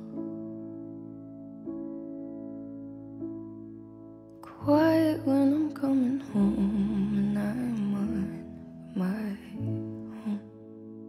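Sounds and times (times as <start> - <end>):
person humming low melody: 6.3 - 8.3.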